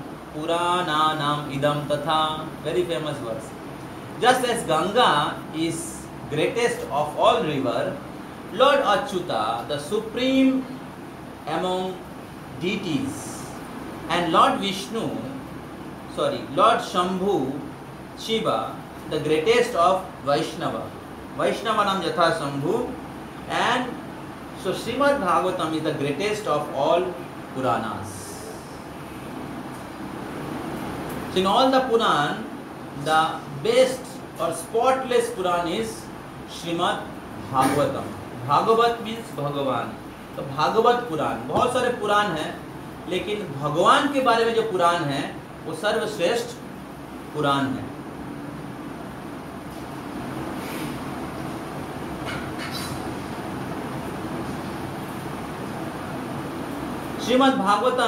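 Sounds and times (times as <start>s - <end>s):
room noise hiss and rumble: 0.0s - 58.0s
brief high hiss: 50.6s - 51.0s.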